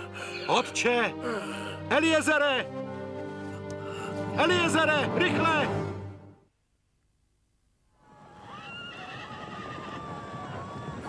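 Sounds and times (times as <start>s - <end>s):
hooves and movement: 8.1s - 11.0s
horses neighing: 8.3s - 10.6s.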